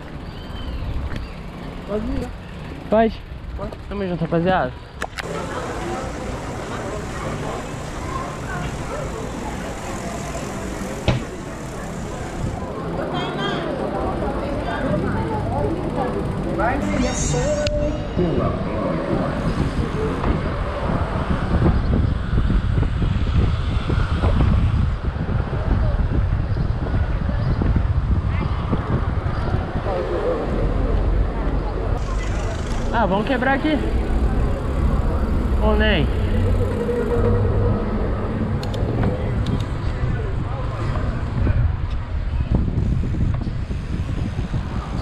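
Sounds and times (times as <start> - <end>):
traffic noise: 0.0 - 45.0
wind noise on microphone: 17.5 - 32.9, 36.4 - 45.0.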